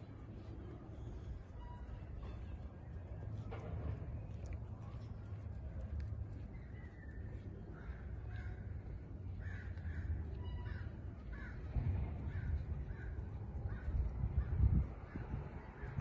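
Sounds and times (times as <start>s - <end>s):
low steady rumble: 0.0s - 16.0s
crow cawing: 9.4s - 11.6s.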